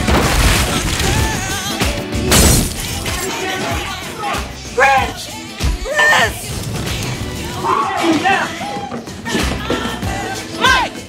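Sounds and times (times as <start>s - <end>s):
glass shattering crash: 0.0s - 1.6s, 2.3s - 3.4s
music playing: 0.0s - 11.0s.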